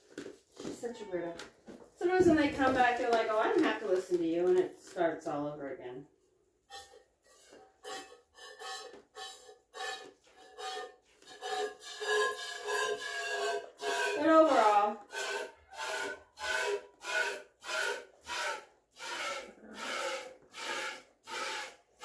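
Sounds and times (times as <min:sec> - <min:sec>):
milk squirting into metal pail: 0:06.7 - 0:22.0.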